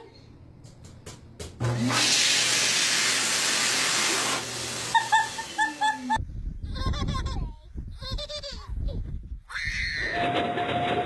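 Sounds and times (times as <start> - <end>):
toilet flushing: 1.7 - 5.6.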